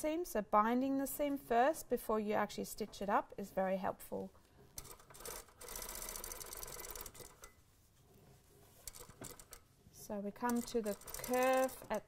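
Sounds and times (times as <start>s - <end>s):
sewing machine stitching: 4.8s - 7.5s, 8.8s - 9.6s, 10.4s - 12.0s.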